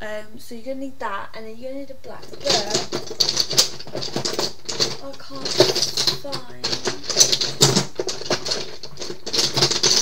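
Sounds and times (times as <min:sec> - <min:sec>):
small bottles clicking on a desk: 0:02.2 - 0:10.0.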